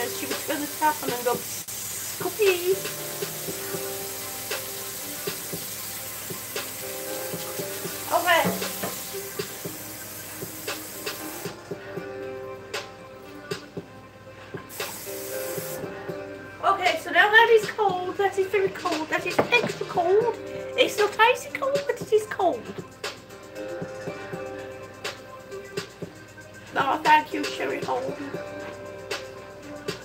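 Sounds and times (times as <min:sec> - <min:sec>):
tap water running: 0:00.0 - 0:12.0, 0:14.6 - 0:16.0, 0:17.2 - 0:23.3
quiet music: 0:00.0 - 0:30.0.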